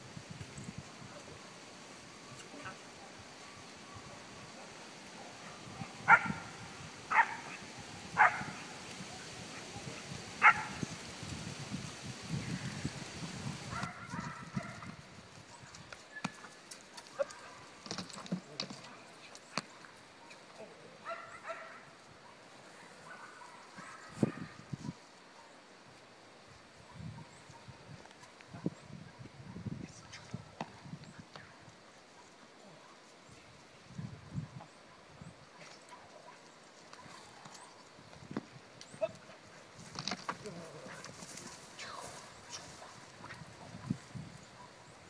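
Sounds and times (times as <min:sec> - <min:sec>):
dog barking: 0:02.3 - 0:04.2, 0:05.2 - 0:06.4, 0:07.1 - 0:07.6, 0:08.2 - 0:08.6, 0:10.4 - 0:10.8, 0:13.7 - 0:14.9, 0:21.0 - 0:25.6, 0:26.9 - 0:27.8, 0:34.1 - 0:37.3
knocks and scuffs on grass: 0:35.6 - 0:44.3
faint voice: 0:41.7 - 0:42.3.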